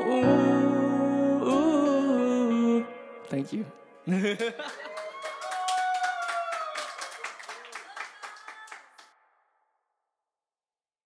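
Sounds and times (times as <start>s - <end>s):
audience clapping: 4.4s - 9.1s.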